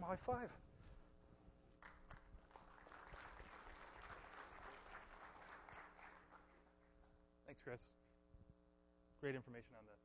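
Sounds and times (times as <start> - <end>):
faint audience applause: 1.8 - 6.8.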